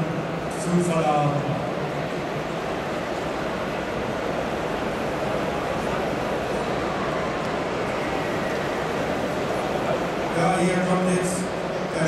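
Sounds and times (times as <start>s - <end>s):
background chatter of crowd: 0.0s - 12.0s.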